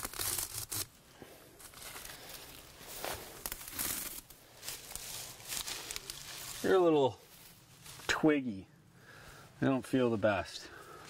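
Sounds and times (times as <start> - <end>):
leaves being ripped by hand: 0.0 - 0.9, 3.0 - 6.6.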